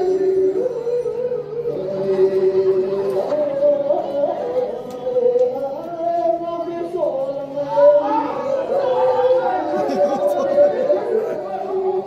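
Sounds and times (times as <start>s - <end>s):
voices speaking and chanting: 0.0s - 12.0s.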